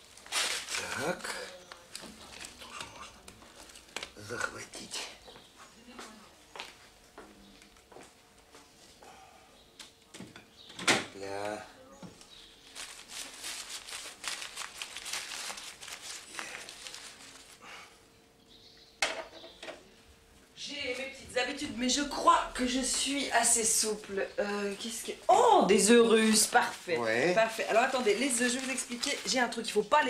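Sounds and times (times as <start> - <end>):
aluminium foil crinkling: 0.0 - 4.3, 12.6 - 17.8, 25.8 - 30.0
small kitchen knocks: 10.2 - 11.2, 19.0 - 19.8.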